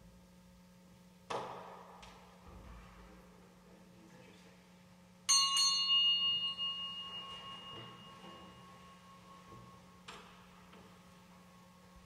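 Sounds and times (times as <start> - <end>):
small bell ringing: 5.3 - 10.1.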